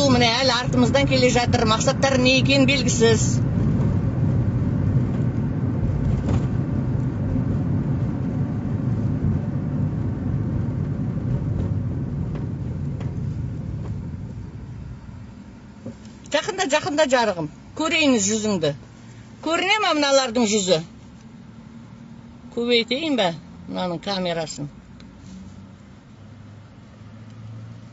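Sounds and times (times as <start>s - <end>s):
car engine rumble: 0.0s - 27.9s
road noise inside car: 0.0s - 27.9s.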